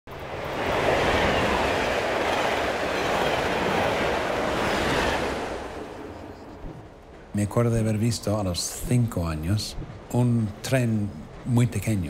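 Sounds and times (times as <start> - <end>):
high-speed train passing: 0.1 - 12.0.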